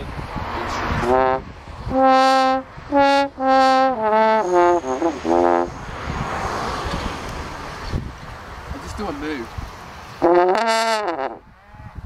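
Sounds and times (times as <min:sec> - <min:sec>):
french horn note: 0:01.0 - 0:05.7.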